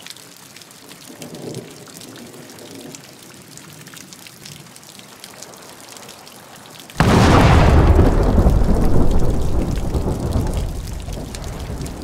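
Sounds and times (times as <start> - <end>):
rain falling on foliage: 0.0 - 12.0
thunder crack: 7.0 - 12.0.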